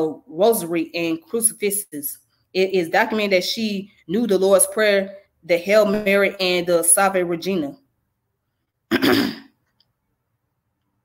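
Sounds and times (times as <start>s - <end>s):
woman clearing her throat: 8.9s - 9.6s.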